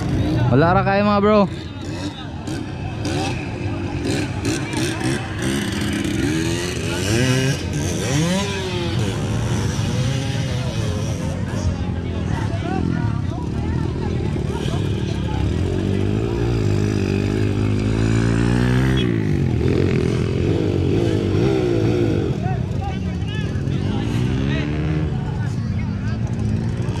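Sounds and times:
dirt bike engine revving: 0.0s - 27.0s
voices: 0.0s - 27.0s.

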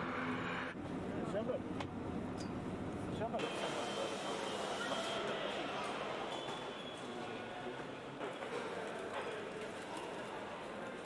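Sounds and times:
hissy hall ambience: 3.4s - 11.0s.

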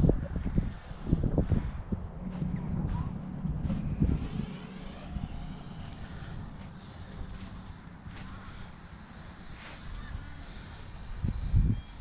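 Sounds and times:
drone propellers humming: 0.0s - 12.0s
low wind rumble: 0.0s - 12.0s
high-pitched whine: 2.2s - 12.0s.

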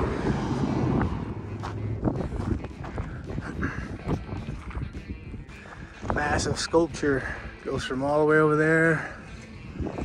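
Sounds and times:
low steady rumble: 0.0s - 4.8s
footsteps crunching on sandy dirt: 0.0s - 10.0s.

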